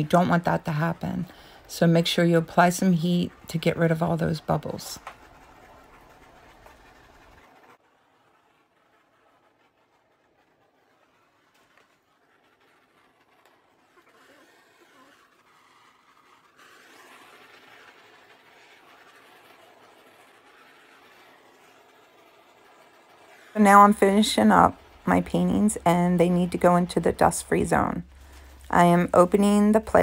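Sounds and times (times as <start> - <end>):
torch flame hissing: 0.0 - 30.0.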